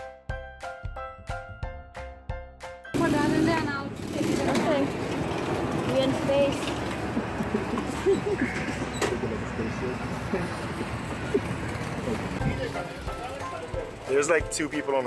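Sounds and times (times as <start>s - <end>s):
go-karts running: 3.0s - 14.4s
voices: 3.0s - 14.4s
people laughing: 6.9s - 12.4s
light plucked music: 12.4s - 15.0s.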